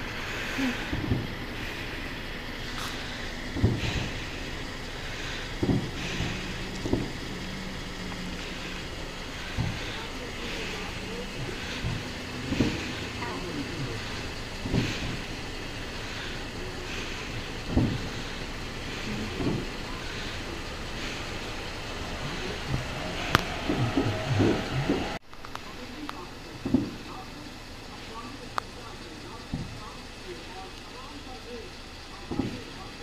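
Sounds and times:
people talking indistinctly: 0.0s - 33.0s
steady background hum: 0.0s - 33.0s.

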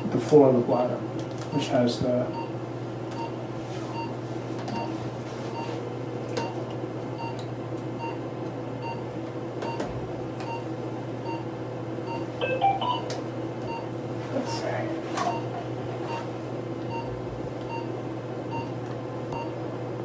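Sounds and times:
equipment humming: 0.0s - 20.0s
electronic chirp: 12.4s - 13.1s.

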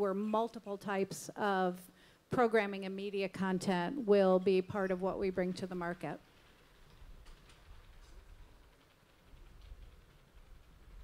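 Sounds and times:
faint low rumble: 2.3s - 11.0s.

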